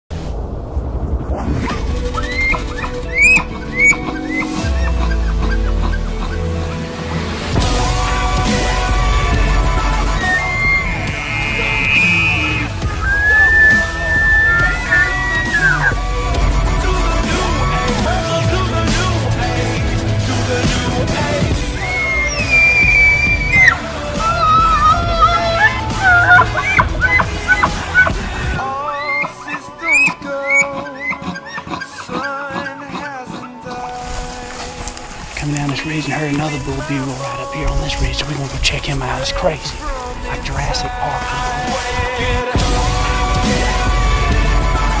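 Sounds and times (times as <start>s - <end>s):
dramatic music with drone: 0.4s - 45.0s
elk bugling: 1.9s - 45.0s.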